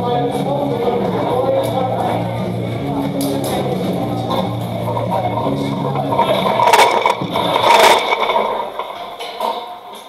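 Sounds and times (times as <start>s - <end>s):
guitar music: 0.0s - 9.4s.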